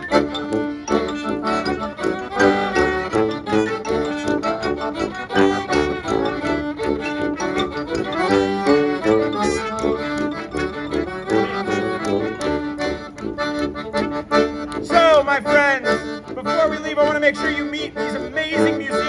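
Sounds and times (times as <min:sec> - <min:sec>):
trumpet: 0:00.0 - 0:12.4
sousaphone: 0:00.0 - 0:13.2
accordion: 0:00.0 - 0:19.0
fiddle: 0:00.0 - 0:19.0
xylophone: 0:00.0 - 0:19.0.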